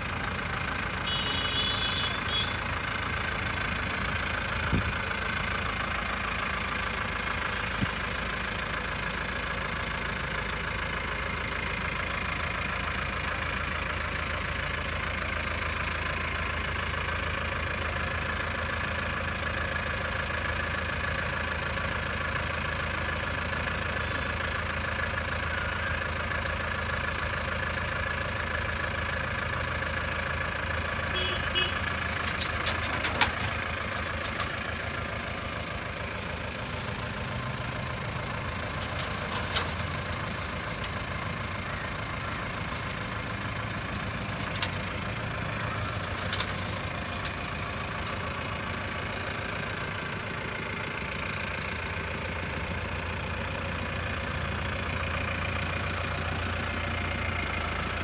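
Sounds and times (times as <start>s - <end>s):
diesel engine idling: 0.0s - 58.0s
metallic clicks and knocks: 32.0s - 34.6s.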